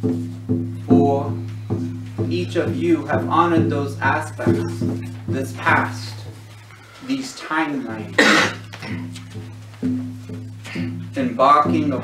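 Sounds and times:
person coughing: 8.0s - 9.1s.

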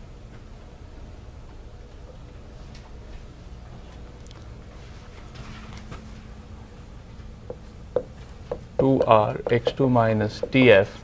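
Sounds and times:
room hum: 0.0s - 11.0s
marker tapping whiteboard: 7.4s - 10.8s.

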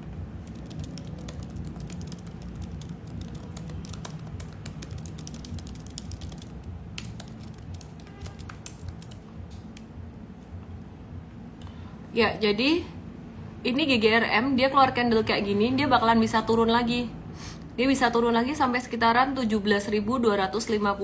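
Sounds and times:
keyboard typing: 0.0s - 10.0s
steady low hum: 0.0s - 21.0s.

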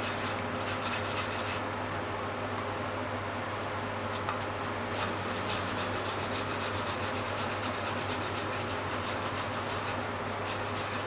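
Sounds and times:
yam grated on plastic grater: 5.0s - 11.0s.

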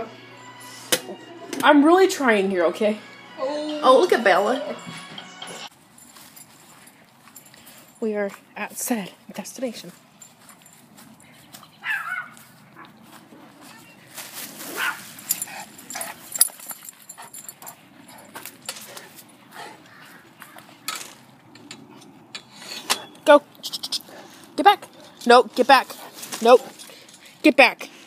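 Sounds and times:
rustles: 5.7s - 28.0s
dog barking: 11.8s - 13.0s, 14.8s - 15.0s.

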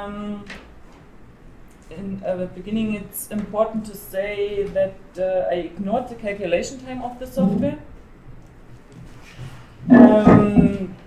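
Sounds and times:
man saying um: 7.2s - 7.8s.

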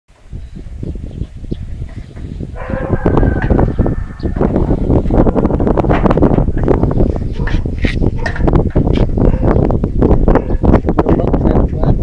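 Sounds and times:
low rumble: 1.6s - 11.2s.

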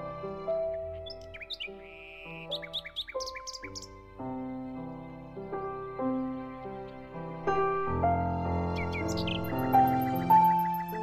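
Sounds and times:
slow background music: 0.0s - 11.0s
bird chirps: 0.5s - 4.0s, 8.7s - 11.0s
buzzy bird trill: 0.7s - 4.0s, 8.8s - 11.0s.

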